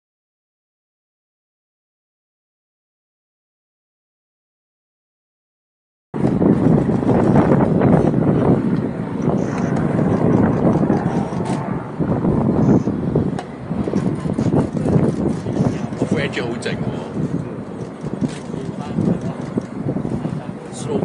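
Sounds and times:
wind buffeting microphone: 6.2s - 21.0s.

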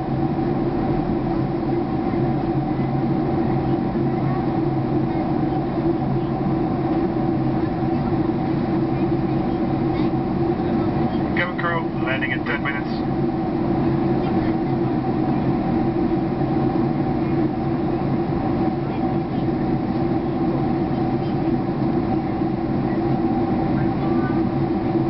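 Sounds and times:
airliner cabin engine drone: 0.0s - 25.0s
constant low hum: 0.0s - 25.0s.

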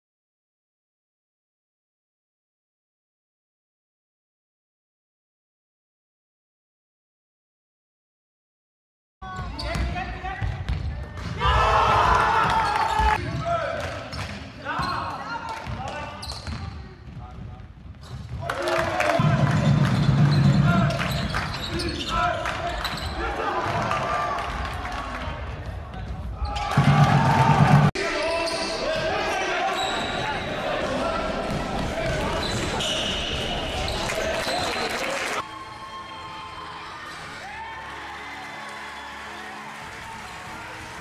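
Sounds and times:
basketball bouncing on court: 9.2s - 11.4s, 15.6s - 18.5s
voices of spectators and players: 9.2s - 41.0s.

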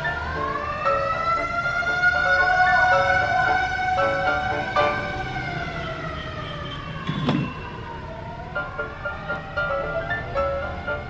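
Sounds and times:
brief knock: 7.1s - 7.5s.

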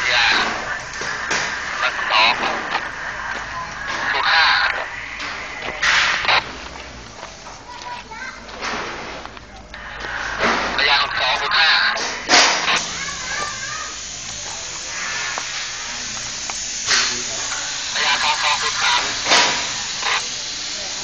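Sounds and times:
short noise bursts: 0.0s - 21.0s
voices talking: 0.0s - 21.0s.

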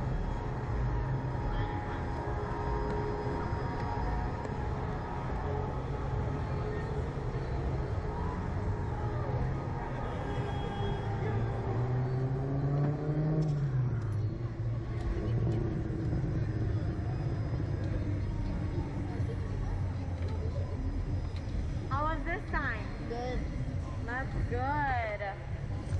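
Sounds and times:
ride machinery humming: 0.0s - 22.7s.

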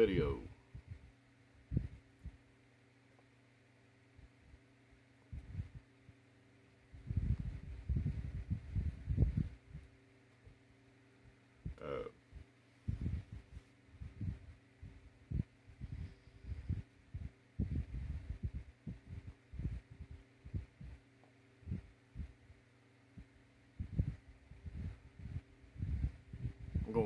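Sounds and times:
low electrical hum: 0.0s - 27.0s.

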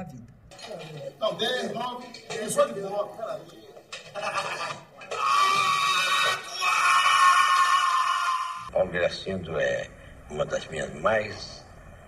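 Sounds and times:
old man screaming: 5.1s - 8.7s.

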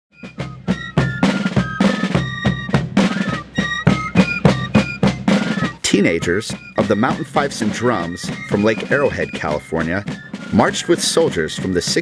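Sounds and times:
high fife melody: 0.1s - 12.0s
snare and bass drums: 0.1s - 12.0s.

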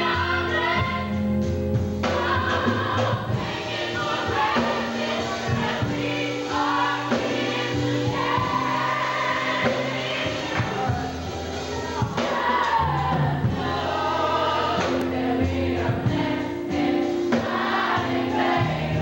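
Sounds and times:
gospel choir singing: 0.0s - 19.0s.

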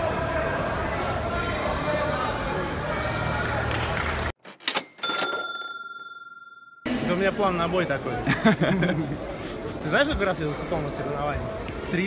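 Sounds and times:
crowd chatter: 0.0s - 4.3s, 6.9s - 12.0s
bell ding: 4.8s - 6.9s.

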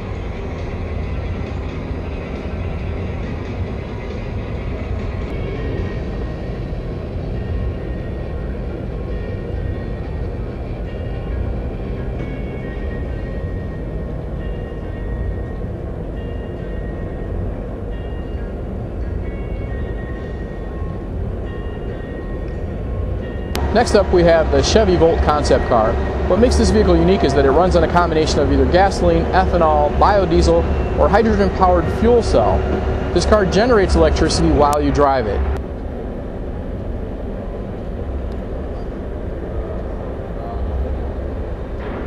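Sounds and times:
background music: 0.0s - 37.7s
low hall noise: 0.0s - 42.0s.

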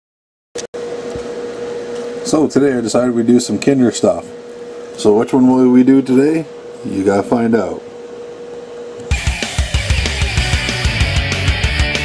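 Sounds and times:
steady machine hum: 0.8s - 12.0s.

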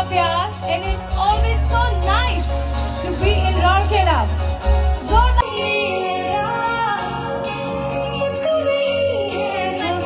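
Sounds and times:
live band through pa: 0.0s - 10.0s
female singer holding long notes: 5.1s - 10.0s.

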